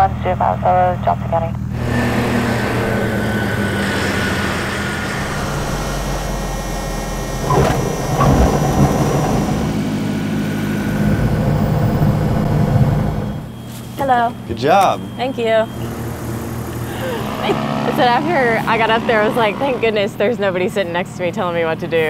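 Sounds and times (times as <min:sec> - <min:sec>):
airplane piston engine and propeller: 0:01.7 - 0:13.4, 0:15.2 - 0:21.9.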